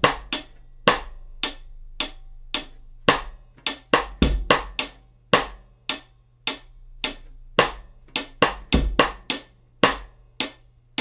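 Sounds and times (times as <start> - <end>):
bass drum: 0.0 - 5.6, 6.5 - 10.2
hi-hat eighth notes: 0.0 - 11.0.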